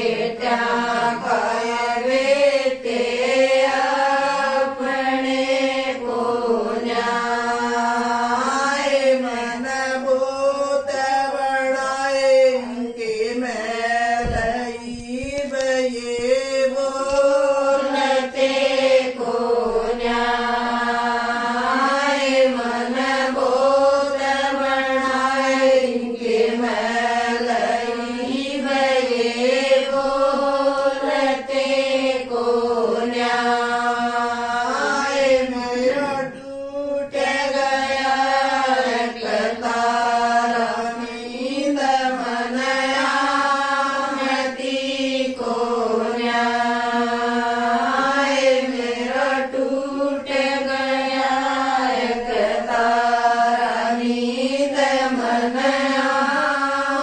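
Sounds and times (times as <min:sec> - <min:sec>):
women singing in unison: 0:00.0 - 0:57.0.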